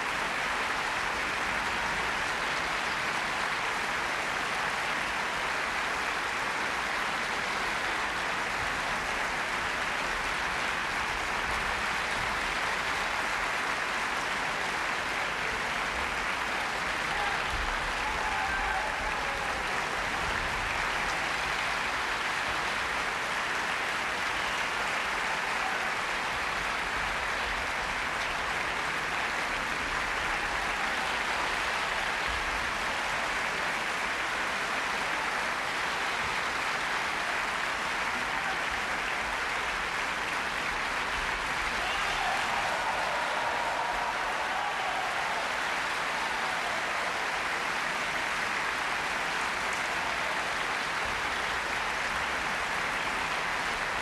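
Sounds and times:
audience applauding: 0.0 - 54.0.

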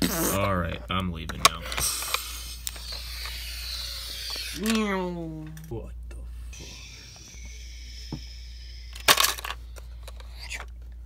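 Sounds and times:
plastic toys clicking: 8.9 - 10.7.

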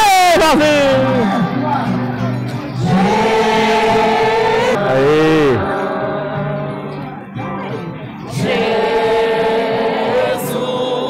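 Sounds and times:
crowd singing a hymn: 0.9 - 11.0.

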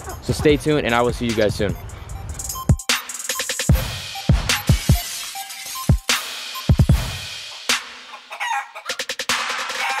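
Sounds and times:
chicken clucks: 7.5 - 9.1, 9.8 - 10.0
rooster crowing: 8.2 - 9.0, 9.7 - 10.0.

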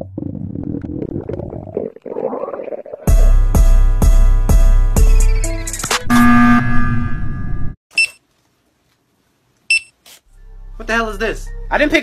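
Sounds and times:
stomach growling: 0.0 - 3.1.

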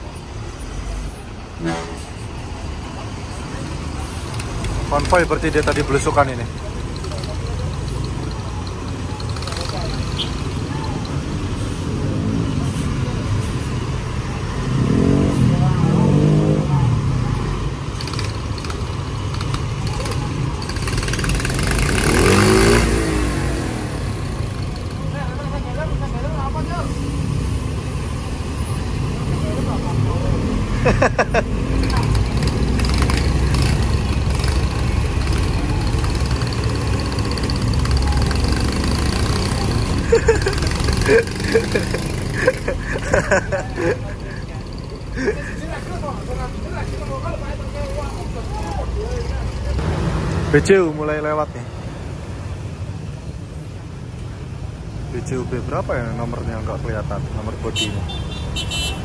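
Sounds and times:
engines revving: 0.0 - 53.1
motorcycles passing: 0.0 - 59.0
tyre rush on wet road: 2.3 - 10.8, 11.4 - 25.4, 28.8 - 51.0.

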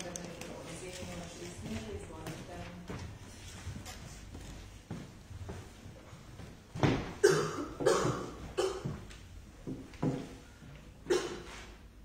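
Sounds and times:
person coughing: 7.2 - 9.0, 11.1 - 11.6.

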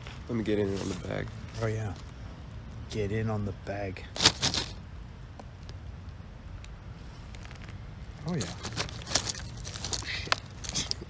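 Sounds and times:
chip bag rustling: 4.2 - 4.8, 7.4 - 11.0.

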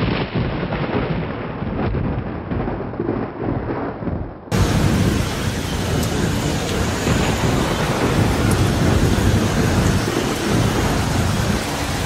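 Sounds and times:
thunder rumbling: 0.0 - 12.0
heavy rain falling: 4.5 - 12.0.

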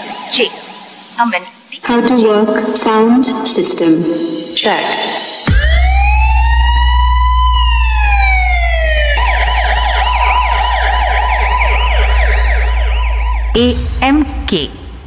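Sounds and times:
siren sound effect: 0.0 - 2.8, 4.0 - 15.0
deep bass tone: 5.5 - 15.0.

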